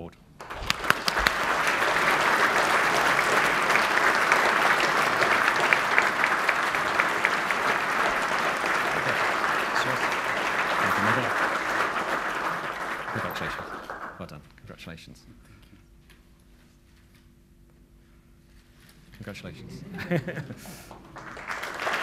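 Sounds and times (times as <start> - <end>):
audience applauding: 0.4 - 14.4, 20.0 - 22.0.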